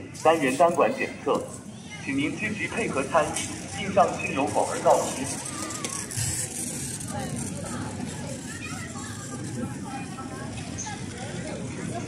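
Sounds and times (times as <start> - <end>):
recorded announcement voice: 0.0 - 1.5, 2.1 - 5.3.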